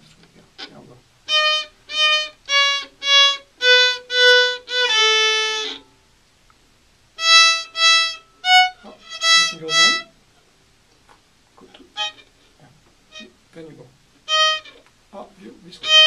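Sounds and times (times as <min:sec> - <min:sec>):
violin bowed in short strokes: 0:00.6 - 0:05.9, 0:07.2 - 0:10.1, 0:11.9 - 0:12.3, 0:14.3 - 0:14.8, 0:15.7 - 0:16.0.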